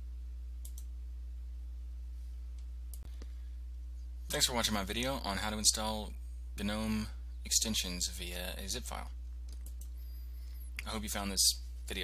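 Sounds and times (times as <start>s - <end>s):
low electrical hum: 0.0s - 12.0s
computer mouse clicks: 0.6s - 0.9s, 9.5s - 10.0s.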